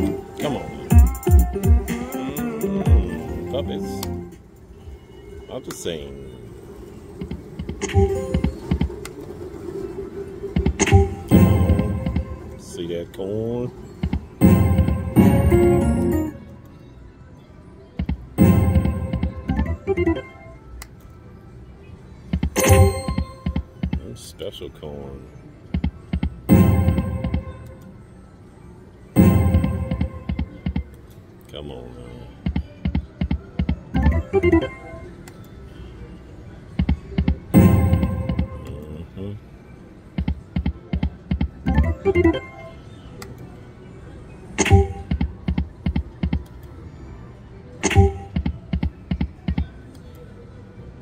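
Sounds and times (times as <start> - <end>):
electronic slot machine chimes: 14.3 - 16.4, 18.4 - 20.6, 22.5 - 23.8, 26.4 - 27.9, 29.2 - 30.8, 34.0 - 35.1, 37.6 - 38.6, 41.7 - 42.8
slot machine reels ticking: 22.4 - 23.7, 40.2 - 42.6.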